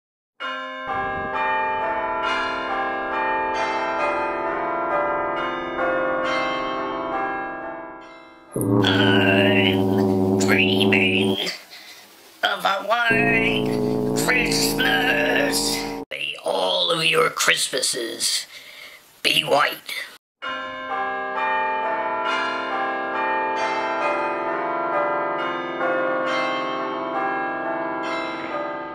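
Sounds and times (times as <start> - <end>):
bell-like chime melody: 8.6 - 11.4, 13.1 - 16.0.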